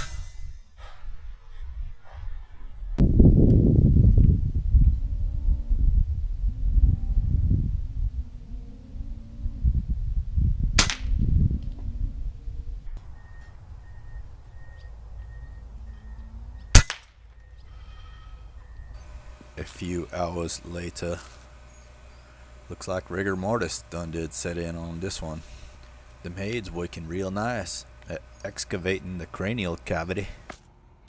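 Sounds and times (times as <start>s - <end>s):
low rumble: 0.0s - 19.4s
air rifle shot crack: 10.8s - 11.2s, 16.7s - 17.2s.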